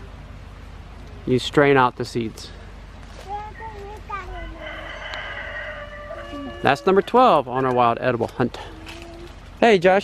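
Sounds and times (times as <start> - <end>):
rooster crowing: 4.4 - 7.5.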